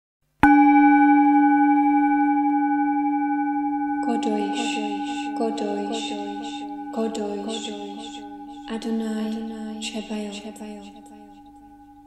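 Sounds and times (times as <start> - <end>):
deep bell ringing: 0.4 - 12.0.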